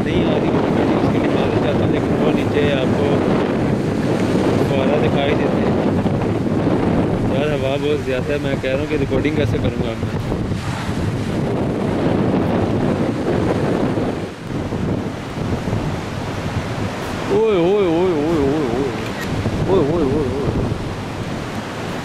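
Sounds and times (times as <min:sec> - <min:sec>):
surf breaking on rocks: 0:00.0 - 0:22.0
wind buffeting microphone: 0:00.0 - 0:22.0.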